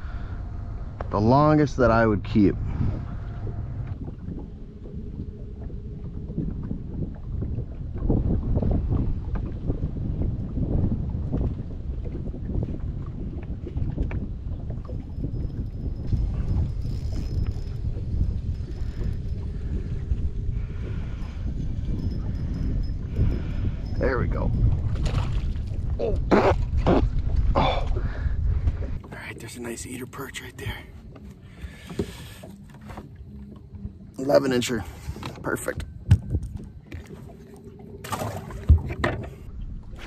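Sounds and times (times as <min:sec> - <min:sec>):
wind buffeting microphone: 0:00.0 - 0:40.0
water slapping boat hull: 0:00.9 - 0:40.0.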